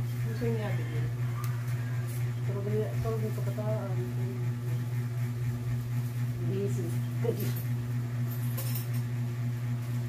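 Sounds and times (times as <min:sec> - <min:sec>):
low motor hum: 0:00.0 - 0:10.0.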